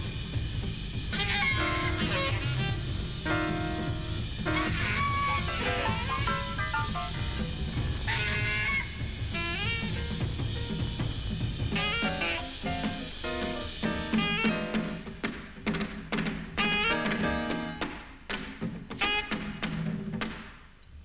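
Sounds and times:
free jazz piano: 0.0s - 18.0s
busy drum kit with cymbals: 0.0s - 21.0s
reed instrument notes and glides: 1.3s - 8.1s.

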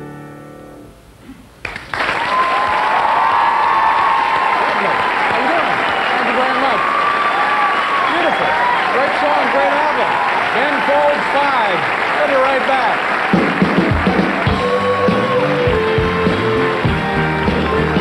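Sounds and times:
audience applauding and cheering: 1.6s - 18.0s
voices whooping and shouting: 2.2s - 11.8s.

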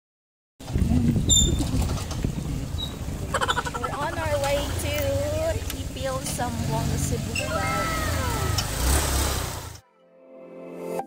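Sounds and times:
motorcycle engine rumbling: 0.6s - 9.8s
person speaking: 3.3s - 8.6s.

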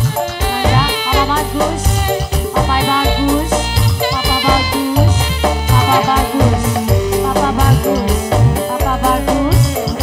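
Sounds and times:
bass: 0.0s - 10.0s
saxophone melody: 0.0s - 10.0s
steady drum beat: 0.0s - 10.0s.

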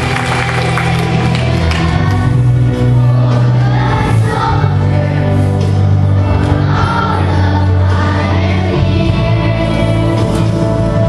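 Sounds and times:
children's choir singing: 0.0s - 11.0s
instrumental accompaniment deep bass: 0.0s - 11.0s.

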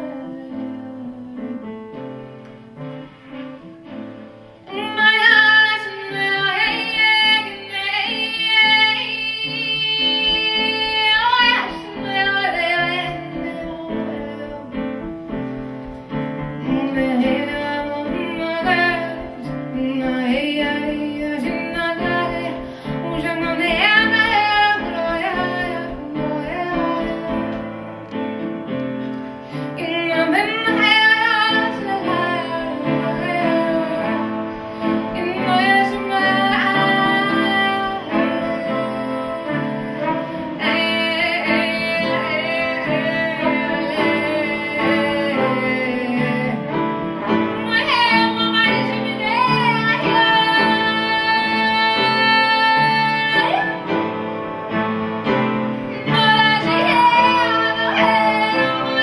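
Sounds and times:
woman singing: 0.0s - 4.0s, 4.6s - 59.0s
soft piano notes: 0.0s - 59.0s.

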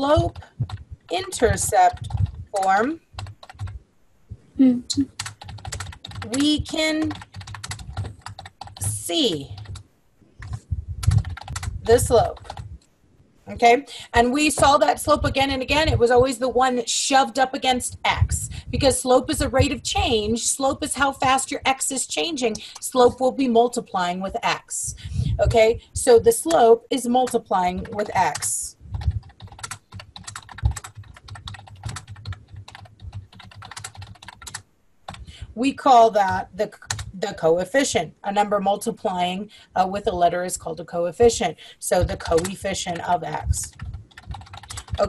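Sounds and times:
keyboard typing clicks: 0.2s - 3.8s, 5.0s - 9.8s, 10.4s - 12.7s, 27.2s - 35.3s, 42.0s - 45.0s.

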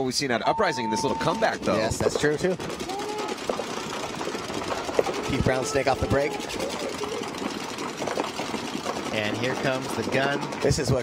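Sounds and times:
paintball markers firing rapidly: 1.0s - 11.0s.

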